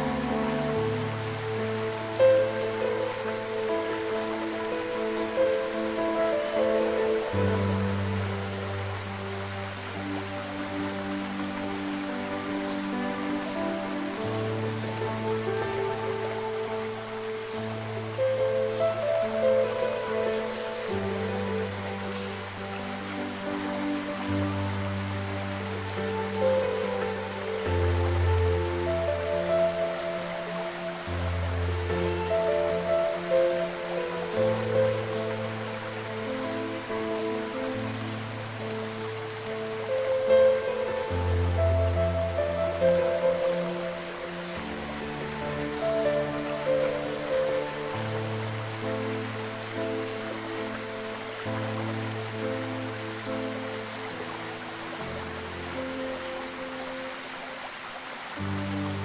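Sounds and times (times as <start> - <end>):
slow soft piano music: 0.0 - 59.0
waterfall rushing: 0.0 - 59.0.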